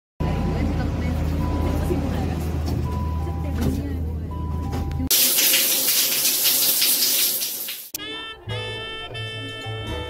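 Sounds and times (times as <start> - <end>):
train rumble inside carriage: 0.2 - 5.0
passengers' voices: 0.2 - 5.1.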